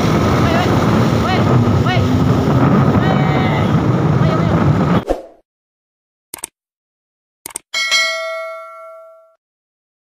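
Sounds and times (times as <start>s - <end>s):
bright notification ding: 7.8s - 9.4s.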